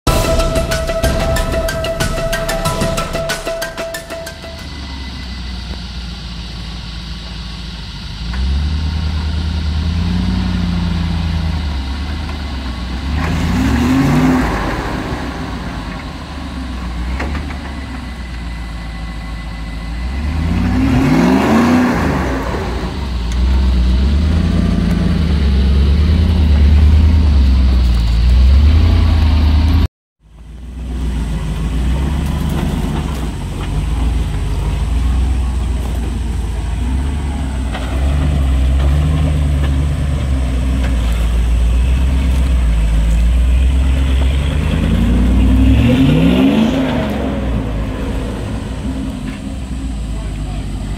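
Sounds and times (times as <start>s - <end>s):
engine labouring under load: 0.0s - 50.9s.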